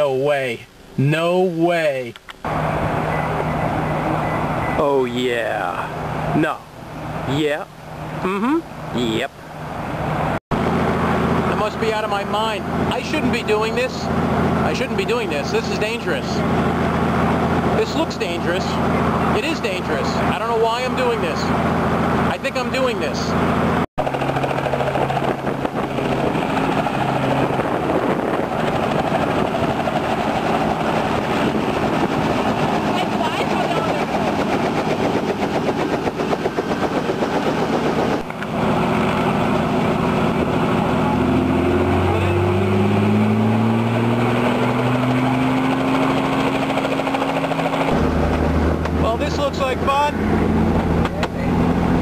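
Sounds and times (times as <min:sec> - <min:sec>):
helicopter rotor chopping: 0:00.0 - 0:52.0.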